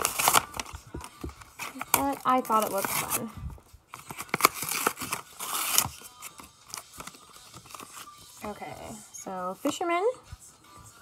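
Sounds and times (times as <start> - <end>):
cards rustling and clicking: 0.0 - 3.2, 3.9 - 8.2
foil wrapper tearing and crinkling: 0.0 - 3.3, 4.0 - 8.1.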